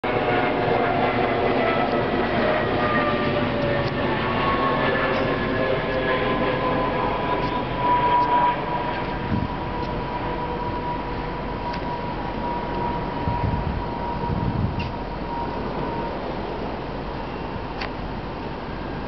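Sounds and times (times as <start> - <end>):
train rumbling: 0.0 - 19.0
train whining tones: 0.0 - 19.0.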